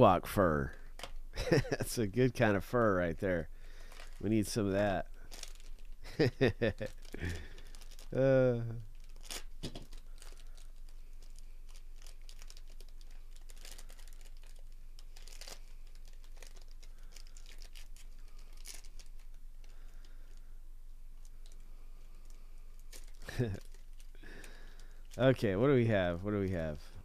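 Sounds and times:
foil wrapper crinkling and tearing: 0.7 - 20.5, 21.2 - 25.4.

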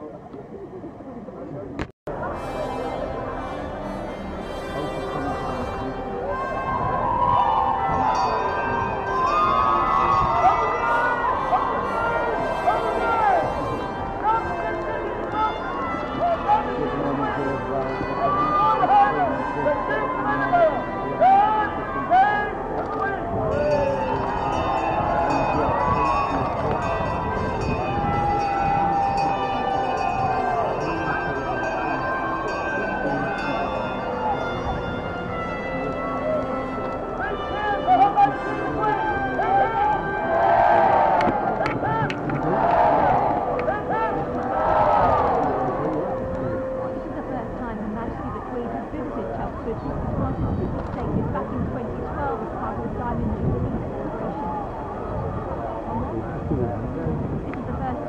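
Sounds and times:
crowd talking and calling out: 0.0 - 58.0
background music: 2.1 - 58.0.

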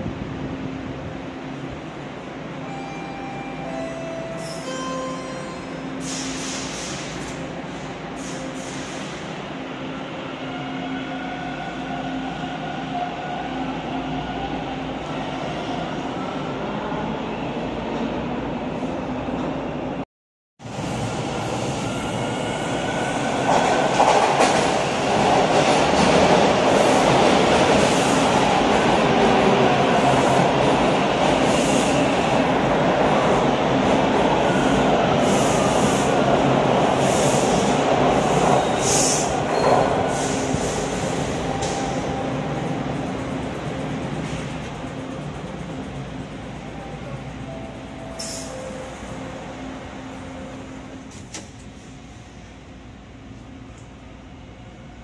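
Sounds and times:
train arriving with rumble: 0.0 - 20.0, 20.6 - 55.0
train whining at platform: 0.0 - 20.0, 20.6 - 55.0
short air hisses: 6.0 - 7.3, 8.2 - 9.2.

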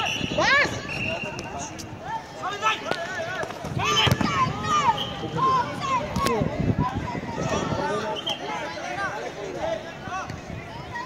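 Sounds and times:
voices shouting over each other: 0.0 - 11.0
ball being kicked: 2.9 - 4.5.

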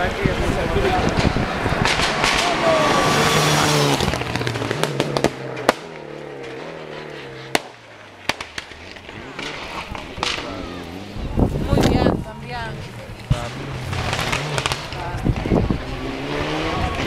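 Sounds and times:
exhaust bangs: 0.0 - 17.0
rally car engine passing: 0.0 - 17.0.

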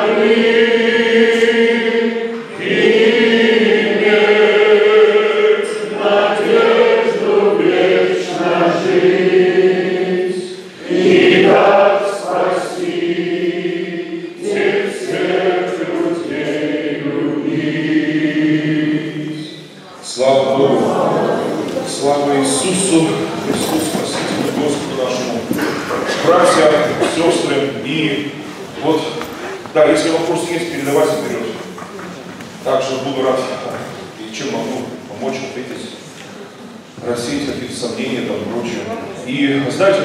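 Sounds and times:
men singing a hymn: 0.0 - 21.4.

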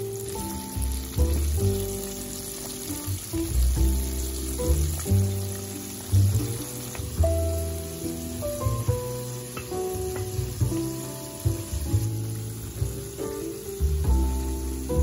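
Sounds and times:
fish deep-frying in oil: 0.0 - 15.0
plucked background music: 0.0 - 15.0.

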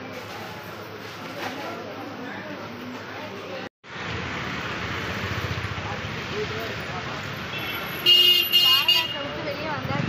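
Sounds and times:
street traffic noise: 0.0 - 10.0
vehicle horn honking: 7.5 - 9.4.

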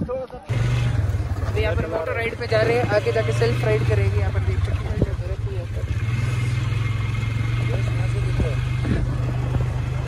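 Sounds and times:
atv engine idling: 0.5 - 10.0.

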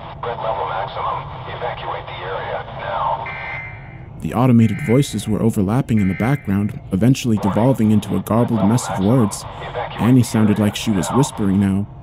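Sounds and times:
overlapping automated voices: 0.0 - 11.9
steady low noise: 0.0 - 12.0
short steady high tone: 3.3 - 5.2, 5.9 - 6.8.

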